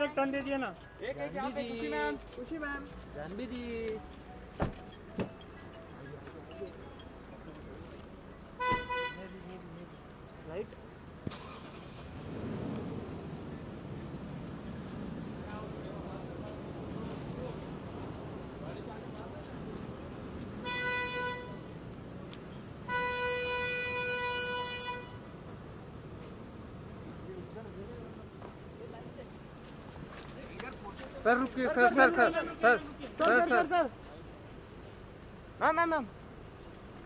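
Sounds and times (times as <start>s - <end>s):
car horn toot: 8.6s - 9.3s, 20.6s - 21.8s, 22.9s - 25.2s.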